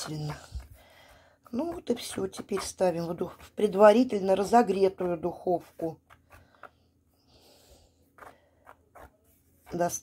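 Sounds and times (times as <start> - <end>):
woman speaking: 0.0 - 0.6, 1.5 - 6.0, 9.7 - 10.0
wooden stick stirring batter: 0.0 - 6.8, 8.0 - 10.0.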